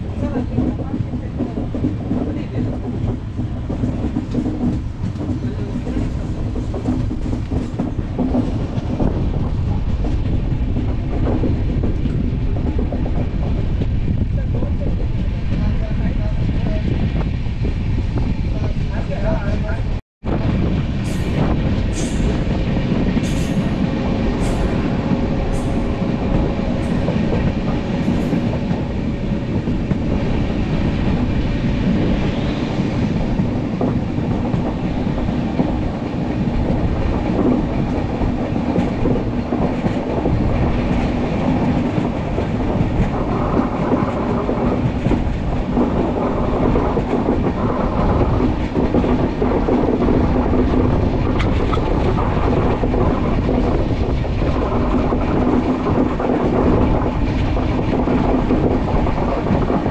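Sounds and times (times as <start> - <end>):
train wheels rumbling on rails: 0.0 - 59.9.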